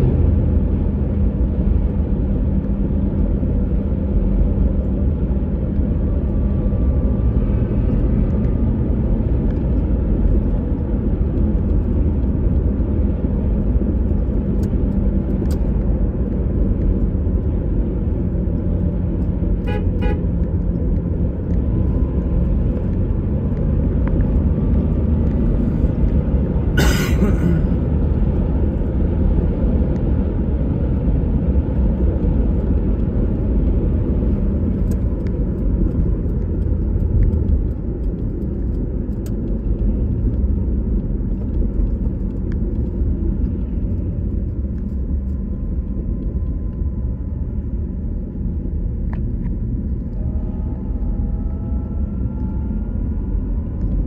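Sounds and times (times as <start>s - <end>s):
car road and engine rumble: 0.0s - 54.0s
car horn honk: 19.6s - 20.3s.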